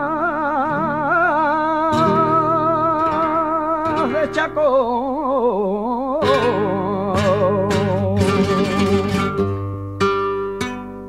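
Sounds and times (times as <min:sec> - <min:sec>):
guitar strums: 0:00.0 - 0:05.3, 0:06.2 - 0:11.0
man singing with vibrato: 0:00.0 - 0:09.6.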